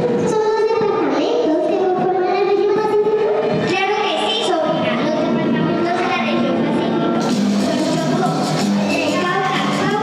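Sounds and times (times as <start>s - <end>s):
girl singing into microphone: 0.0s - 10.0s.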